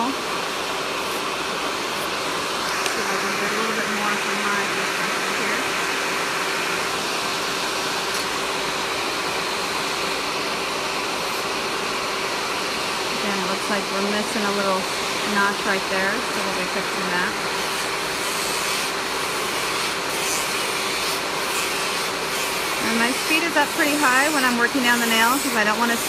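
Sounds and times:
electric nail file whirring: 0:00.0 - 0:26.0.

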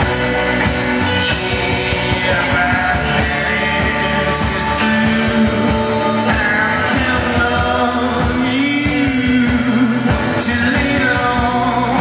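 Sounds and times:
drums: 0:00.0 - 0:12.0
electric guitars: 0:00.0 - 0:12.0
keyboard: 0:00.0 - 0:12.0
man singing long notes: 0:01.1 - 0:12.0.

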